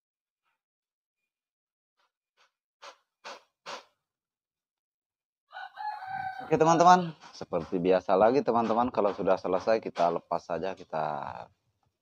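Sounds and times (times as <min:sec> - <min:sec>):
rooster crowing: 0:05.5 - 0:06.8.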